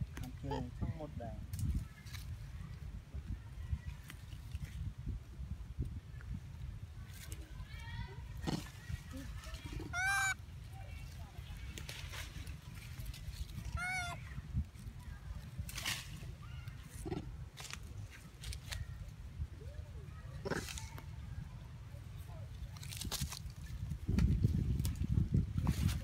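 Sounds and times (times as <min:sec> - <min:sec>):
rustles and clicks in grass: 0:01.4 - 0:09.8, 0:10.7 - 0:26.0
baby monkey squealing cries: 0:09.9 - 0:10.4, 0:13.7 - 0:14.2.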